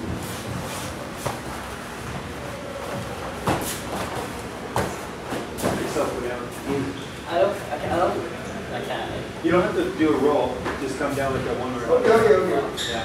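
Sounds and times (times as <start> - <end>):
bare feet thudding on mats: 2.9 - 5.9.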